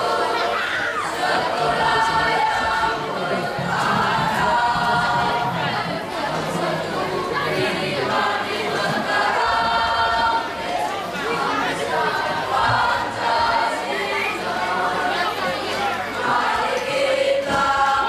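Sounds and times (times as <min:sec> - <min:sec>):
boys' choir singing: 0:00.0 - 0:18.0.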